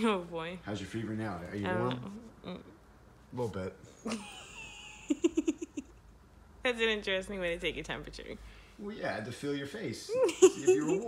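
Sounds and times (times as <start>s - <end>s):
woman laughing: 4.1s - 6.0s, 10.1s - 11.0s.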